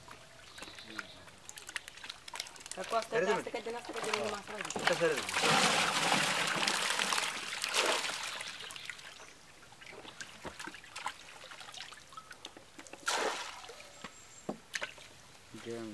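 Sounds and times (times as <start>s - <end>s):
small wet clicks and patters: 0.0s - 5.3s, 10.0s - 13.0s
water pouring with splashes: 0.0s - 9.2s, 9.8s - 13.8s
water trickling and dripping: 0.0s - 15.8s.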